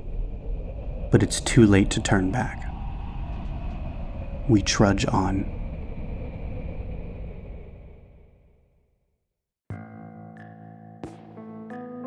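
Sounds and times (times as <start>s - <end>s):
low rumbling ambience: 0.0s - 8.8s.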